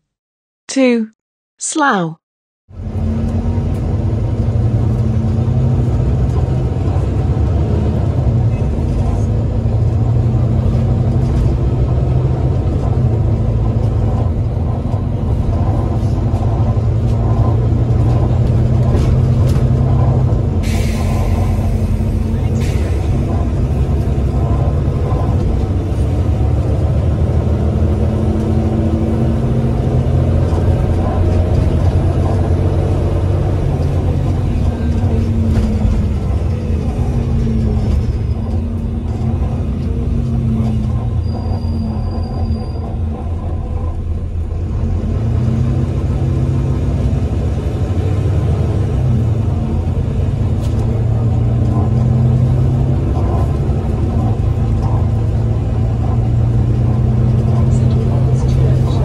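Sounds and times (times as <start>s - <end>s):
bus diesel engine rumble: 2.7s - 59.0s.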